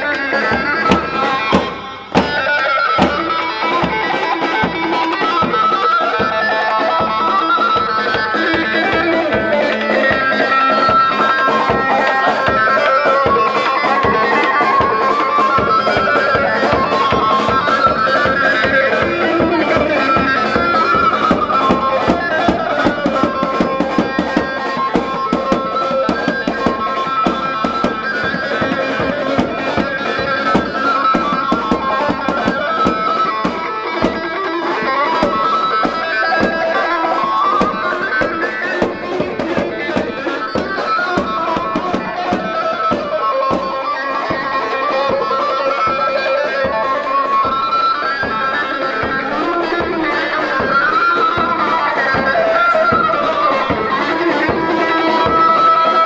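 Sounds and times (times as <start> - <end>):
driving drum beat: 0.0 - 56.0
reedy wind instrument melody: 0.0 - 56.0.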